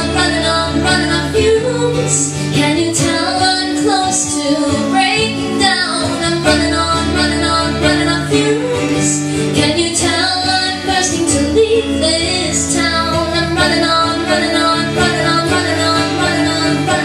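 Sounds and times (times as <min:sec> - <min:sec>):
acoustic guitar strumming: 0:00.0 - 0:17.0
woman singing: 0:00.0 - 0:17.0.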